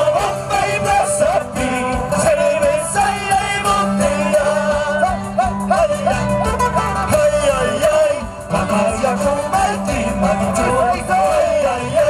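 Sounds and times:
person singing: 0.0s - 12.0s
strummed guitars and strings: 0.0s - 12.0s.

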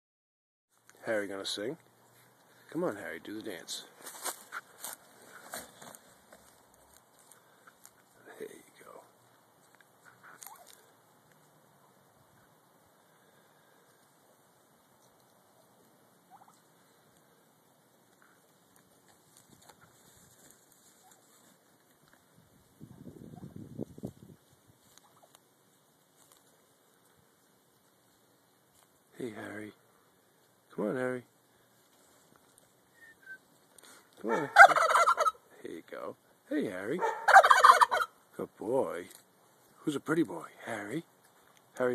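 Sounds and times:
turkeys pecking corn kernels: 0.8s - 23.5s, 24.3s - 29.1s, 31.3s - 35.5s, 36.2s - 38.3s.

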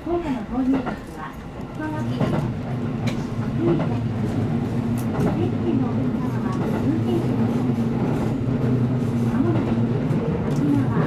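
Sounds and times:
electric train rumbling: 0.0s - 11.0s.

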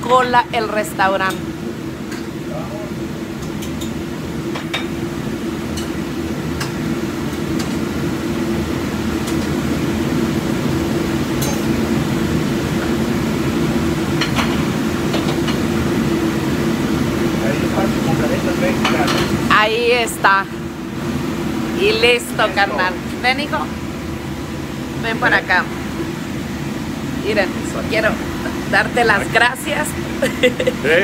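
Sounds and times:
low machine hum: 0.0s - 31.0s.

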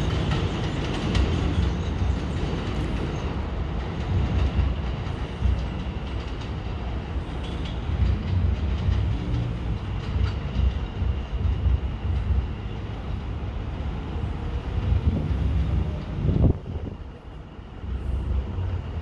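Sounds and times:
train wheels rumbling on rail: 0.0s - 19.0s.

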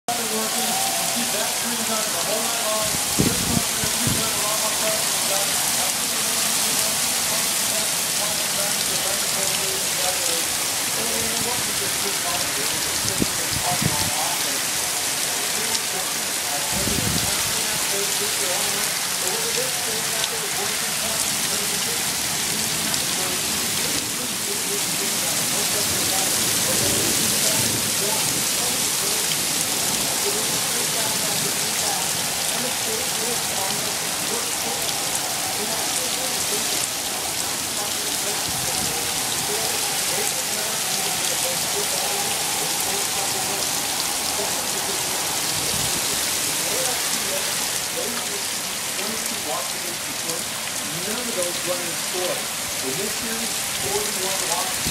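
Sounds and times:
heavy rain pouring: 0.0s - 54.9s.

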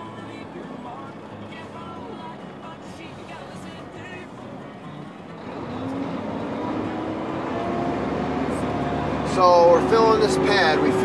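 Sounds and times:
truck diesel engine pulling: 0.0s - 11.0s.

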